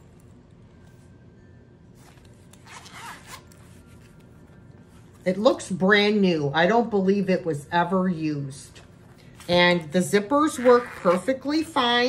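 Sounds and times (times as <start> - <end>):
wallet zipper opening: 2.0 - 4.1, 10.4 - 11.7.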